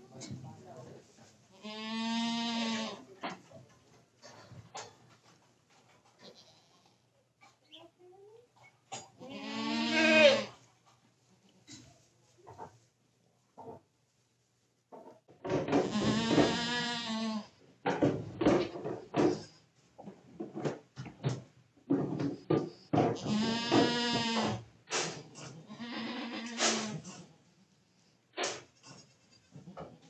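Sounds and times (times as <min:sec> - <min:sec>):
goat bleating: 0:01.6 - 0:03.0, 0:09.2 - 0:10.6, 0:15.8 - 0:17.5, 0:23.2 - 0:24.6, 0:25.4 - 0:27.3.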